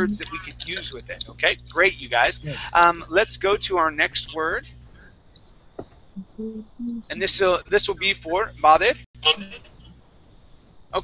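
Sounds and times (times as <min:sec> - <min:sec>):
person speaking: 0:00.0 - 0:04.7, 0:06.2 - 0:09.7
faint hiss of audio line: 0:00.0 - 0:06.0, 0:07.0 - 0:11.0.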